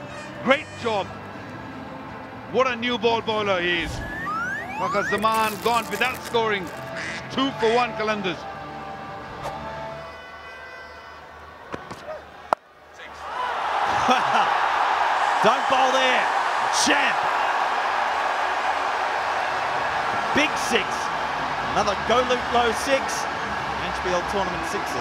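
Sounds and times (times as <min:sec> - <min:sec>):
stadium crowd cheering: 0:03.4 - 0:07.9, 0:10.0 - 0:25.0
shouts and whistles: 0:04.0 - 0:05.6.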